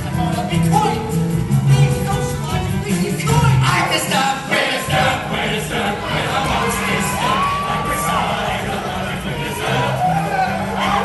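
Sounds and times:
accompaniment music: 0.0 - 11.0
audience cheering and shouting: 3.3 - 11.0.

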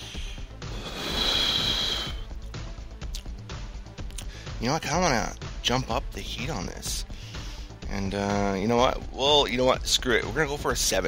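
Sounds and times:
breath hissing with faint whistle: 0.0 - 2.3
background music: 0.0 - 11.0.

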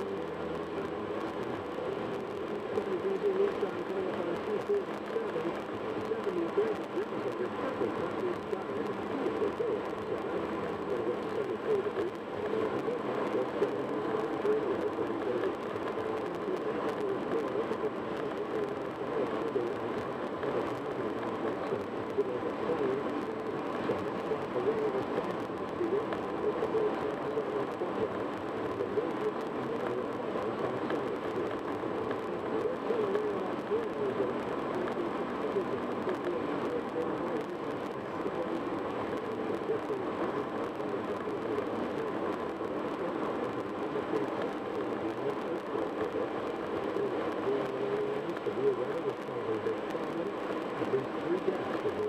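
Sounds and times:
muffled talk radio voice: 0.0 - 52.0.

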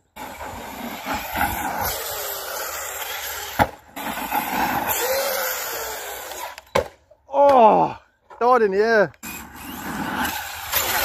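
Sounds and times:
rc car motor and tyres hiss: 0.1 - 6.7, 9.2 - 11.0.

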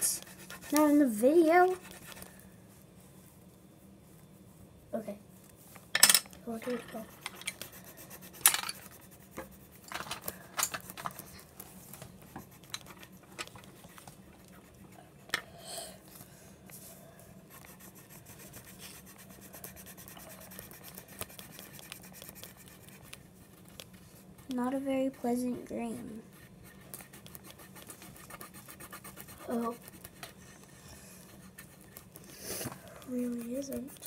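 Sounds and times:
crayons clicking and tapping: 0.0 - 2.3, 6.1 - 15.4, 17.5 - 24.9, 26.4 - 34.0
crayon scratching on paper: 0.0 - 2.4, 6.5 - 10.0, 10.8 - 15.2, 17.5 - 34.0.

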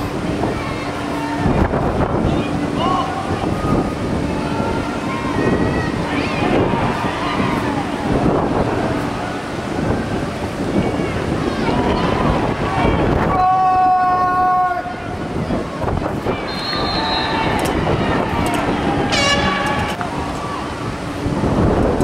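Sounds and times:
crowd noise: 0.0 - 22.0
wind buffeting microphone: 0.0 - 22.0
short high whistle: 16.5 - 17.4
horn blast: 19.0 - 20.0.

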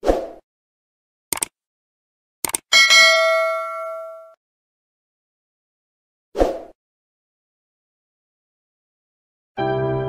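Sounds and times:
notification bell chime: 2.8 - 4.4.

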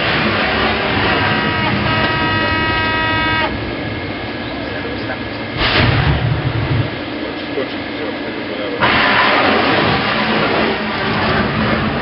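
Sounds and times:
loud rush of noise: 0.0 - 12.0
steady ship noise: 0.0 - 12.0
horn-like alarm tone: 0.3 - 3.6.

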